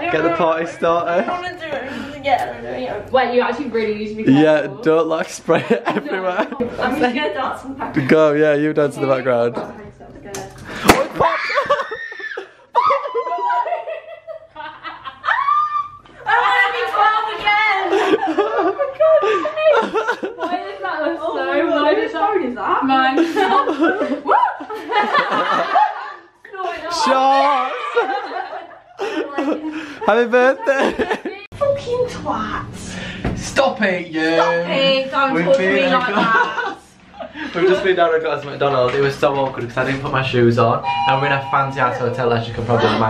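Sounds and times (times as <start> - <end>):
champagne cork popping: 10.3 - 11.3
women laughing and squealing: 11.2 - 21.1, 23.1 - 26.9.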